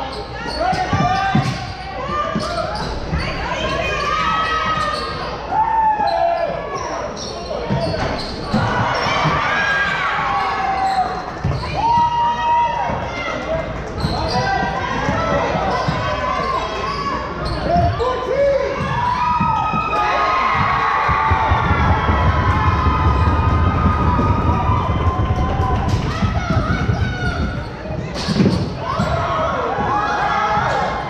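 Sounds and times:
sneakers squeaking on court: 0.1 - 4.1, 6.4 - 10.0, 13.9 - 14.8, 15.7 - 18.1
rumble of running feet: 19.3 - 28.0
basketball dribbling: 20.5 - 27.8.

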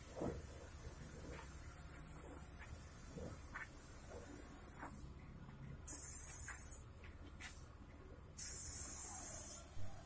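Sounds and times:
spray gun hissing: 5.9 - 6.8, 8.4 - 10.0.

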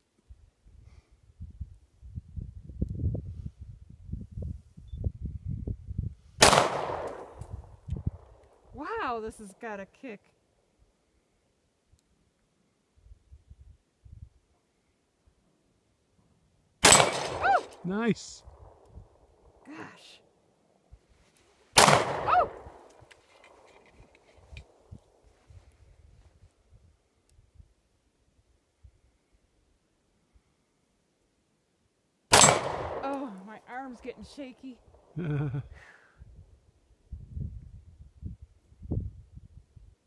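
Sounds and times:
pistol shot: 6.4 - 7.5, 16.8 - 17.8, 21.8 - 22.7, 32.3 - 33.1.

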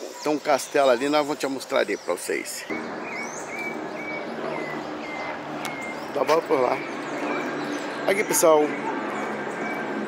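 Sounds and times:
city background noise: 0.0 - 10.0
bird repeating high call: 3.0 - 10.0.

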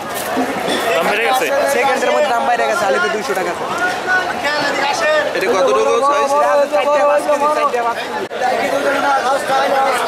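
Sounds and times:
market crowd chatter: 0.0 - 10.0
people talking: 0.0 - 10.0.

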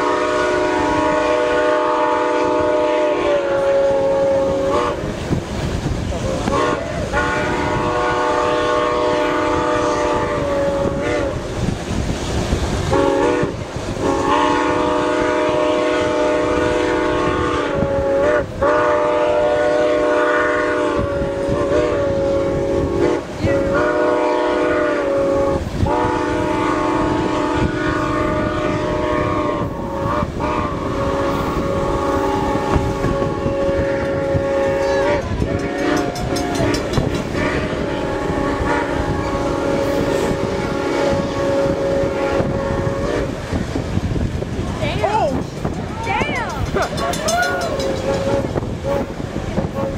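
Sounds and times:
steam locomotive chime whistle: 0.0 - 5.1, 6.2 - 11.5, 12.9 - 43.5, 46.6 - 49.9
train wheels rumbling and clacking: 0.0 - 49.9.

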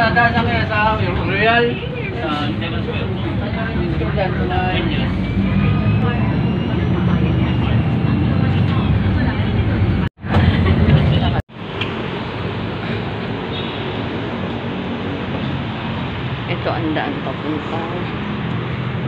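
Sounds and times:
bus engine rumble: 0.0 - 19.0
outdoor noise: 0.0 - 19.0
road noise: 0.0 - 19.0.

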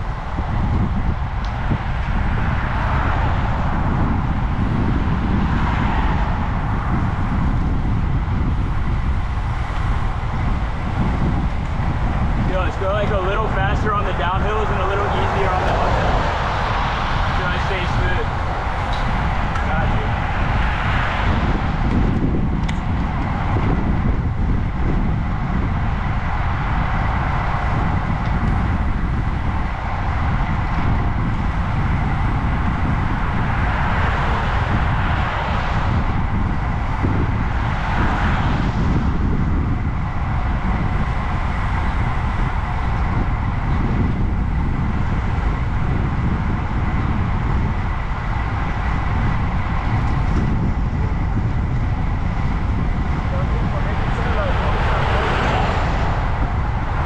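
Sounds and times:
car passing: 0.0 - 57.0
wind buffeting microphone: 0.0 - 57.0.

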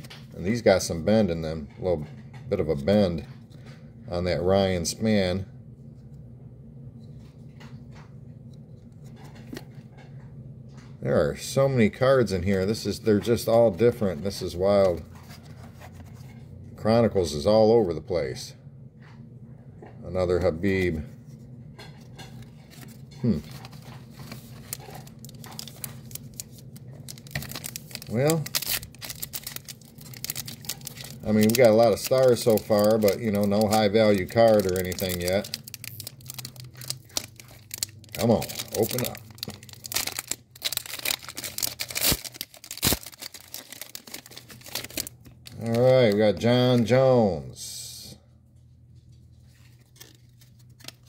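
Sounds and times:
low background hum: 0.0 - 51.0
foil wrapper crinkling: 22.2 - 46.9
trading cards being handled: 22.2 - 46.9, 49.2 - 51.0.

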